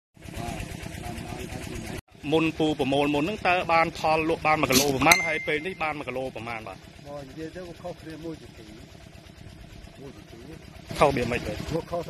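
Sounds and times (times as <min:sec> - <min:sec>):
small engine running: 0:00.2 - 0:12.0.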